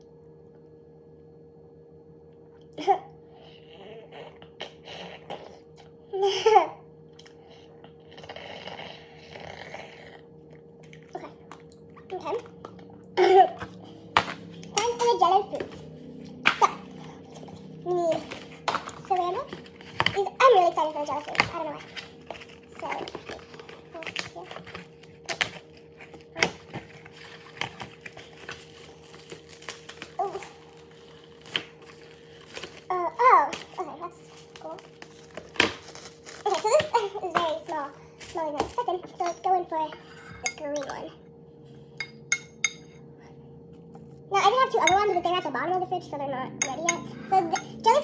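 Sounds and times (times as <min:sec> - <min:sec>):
faint steady hum: 0:00.0 - 0:48.0
sped-up high voice talking: 0:14.7 - 0:15.8, 0:44.3 - 0:48.0.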